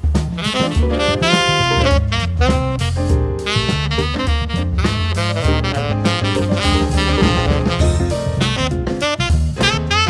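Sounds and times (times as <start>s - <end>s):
bass line: 0.0s - 10.0s
saxophone melody: 0.3s - 10.0s.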